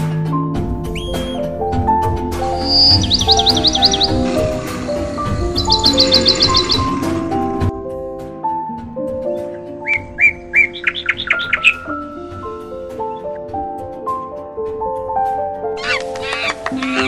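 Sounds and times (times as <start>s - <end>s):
background music: 0.0s - 17.0s
bird chirping: 0.9s - 1.5s, 2.5s - 7.1s, 9.8s - 12.2s.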